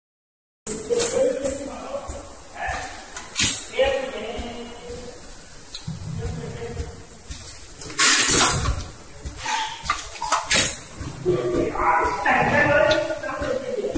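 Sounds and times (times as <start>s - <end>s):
burst of hissing: 0.7s - 11.2s
indistinct voices talking: 0.7s - 13.9s
printing machine running: 0.7s - 13.9s
sharp click: 2.7s - 3.7s.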